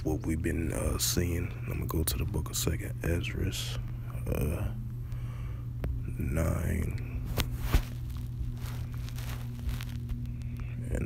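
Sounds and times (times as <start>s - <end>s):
low electrical hum: 0.0s - 11.0s
faint rustles and clicks: 5.9s - 11.0s.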